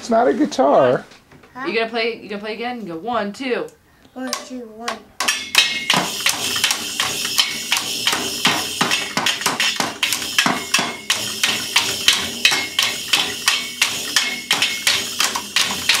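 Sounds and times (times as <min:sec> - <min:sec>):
toy drums being banged: 0:04.3 - 0:16.0
toy cymbal ringing: 0:05.4 - 0:09.2, 0:10.0 - 0:16.0.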